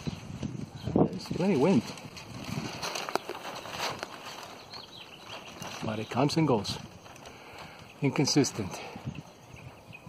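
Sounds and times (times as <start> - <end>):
sail rustling in breeze: 0.0 - 10.0.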